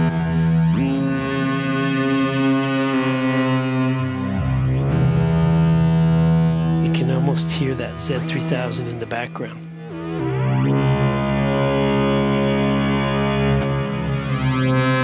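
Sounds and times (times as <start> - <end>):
synthesizer sustained notes: 0.0 - 15.0.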